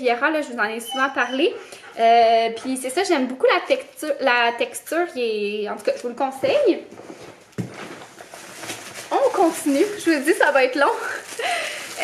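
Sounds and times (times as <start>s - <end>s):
plastic packaging rustling: 5.8s - 12.0s.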